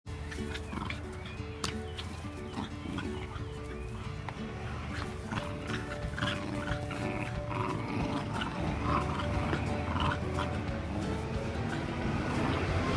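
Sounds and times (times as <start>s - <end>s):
background music: 0.1s - 12.9s
dogs growling in play: 0.2s - 12.9s.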